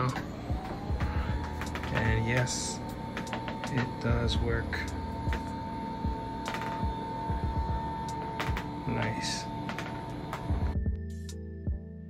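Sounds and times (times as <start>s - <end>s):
desk lift motors humming: 0.0s - 10.8s
background music with low beat: 0.0s - 12.0s.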